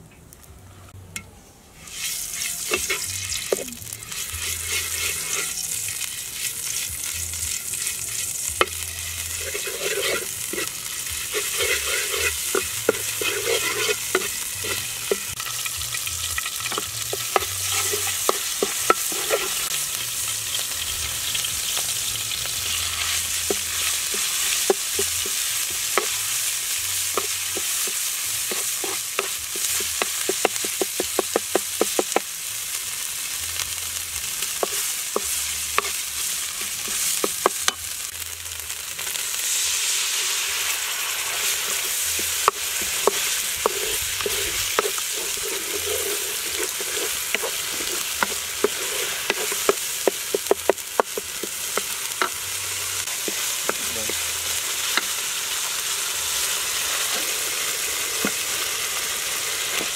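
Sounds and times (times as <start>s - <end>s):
wooden spatula scraping a pan: 1.8s - 6.2s, 9.3s - 15.3s, 16.4s - 19.7s, 27.2s - 31.2s, 41.2s - 52.4s
paste sizzling in hot oil: 1.8s - 59.9s.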